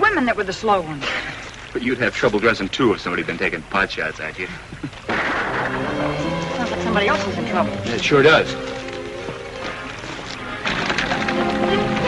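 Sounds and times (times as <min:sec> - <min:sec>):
gunshot: 0:05.1 - 0:06.1
dramatic music of sustained chords: 0:05.4 - 0:10.0, 0:10.9 - 0:12.0.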